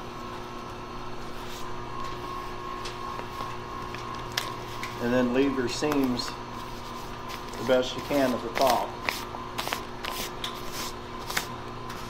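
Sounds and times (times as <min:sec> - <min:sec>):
machinery humming: 0:00.0 - 0:12.0
pipe insulation crinkling: 0:01.2 - 0:12.0.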